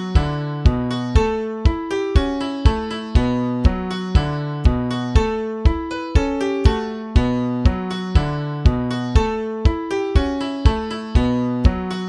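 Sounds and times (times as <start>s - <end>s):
low bass line: 0.0s - 1.4s, 2.7s - 9.4s
keyboard playing chords: 0.0s - 12.0s.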